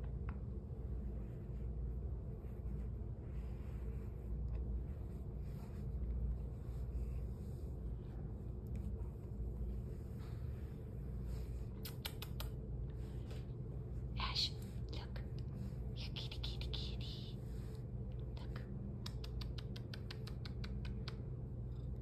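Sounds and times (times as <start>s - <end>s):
light scratching clicks: 11.7s - 13.4s, 18.9s - 21.4s
cat purring: 21.4s - 22.0s.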